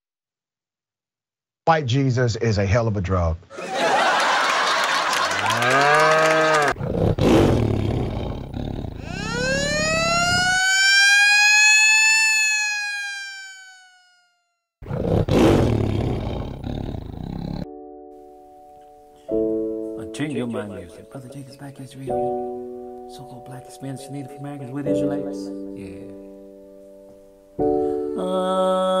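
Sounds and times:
pitched sweep: 9.0s - 14.2s.

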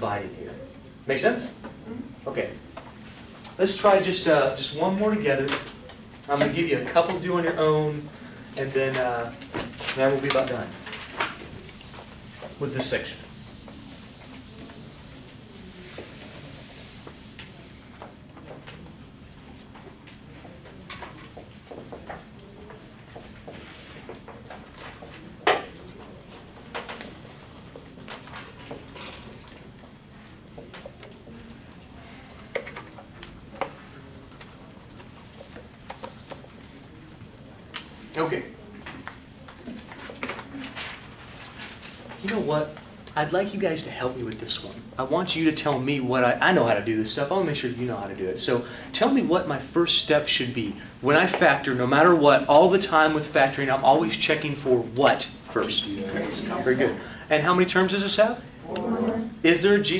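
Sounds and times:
eraser rubbing on whiteboard: 11.4s - 17.6s.

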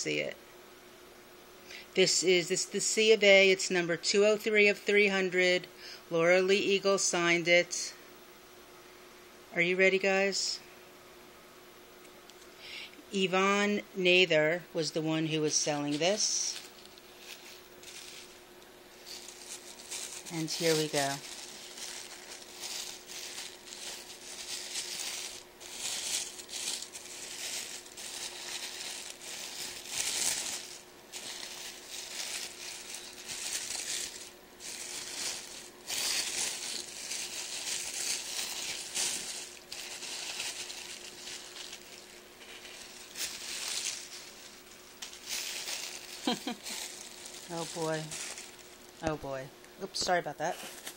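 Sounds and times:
tissue paper crinkling: 15.3s - 49.0s.

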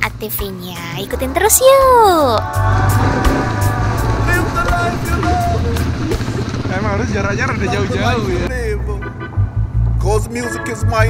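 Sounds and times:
quad bike engine rumbling: 2.4s - 11.0s.

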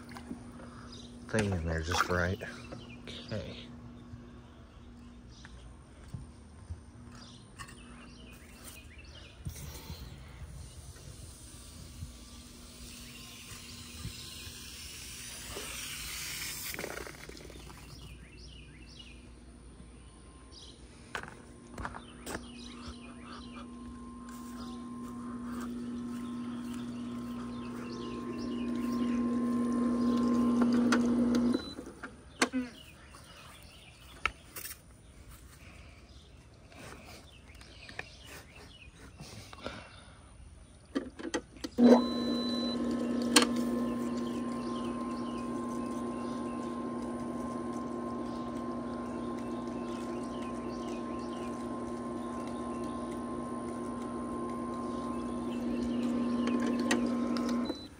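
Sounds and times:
motor humming: 9.4s - 18.2s, 21.1s - 32.6s, 41.6s - 57.9s.

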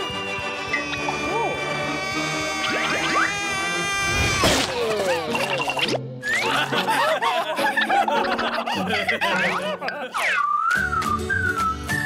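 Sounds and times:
swooping whistle-like tone: 0.0s - 1.4s, 10.2s - 12.0s
background music: 0.0s - 12.0s
cartoon characters giggling: 4.8s - 10.4s.

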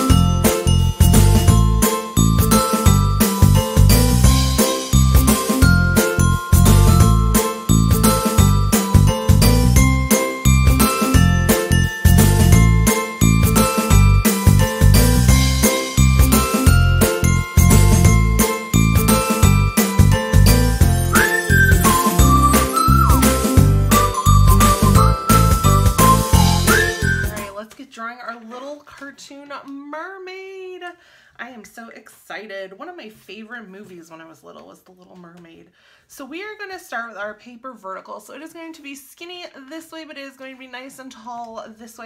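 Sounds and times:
upbeat intro music: 0.0s - 27.6s
sliding high melody line: 4.3s - 27.6s.

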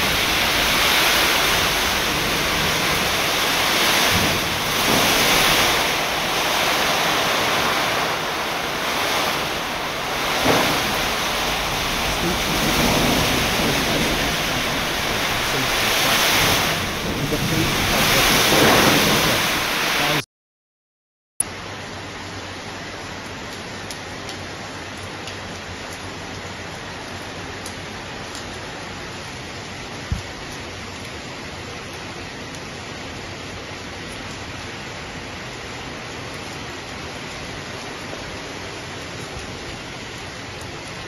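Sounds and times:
wind buffeting microphone: 0.0s - 20.2s
heavy rain: 0.0s - 20.3s, 21.5s - 41.0s.

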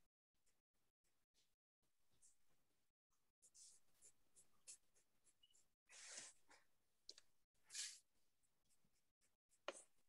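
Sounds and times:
pencil strokes on paper: 3.2s - 6.6s.

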